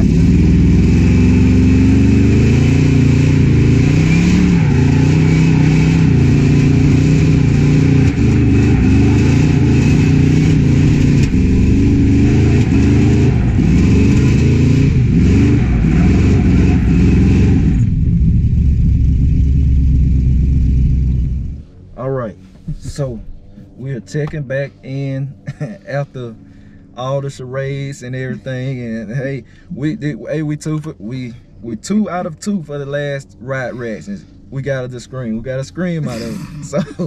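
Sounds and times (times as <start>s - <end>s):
car engine at high revs: 0.0s - 37.0s.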